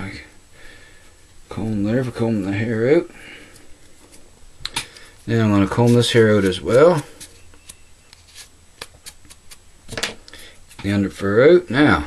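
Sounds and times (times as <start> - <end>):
comb raking through hair: 5.0 - 9.7, 10.5 - 11.7.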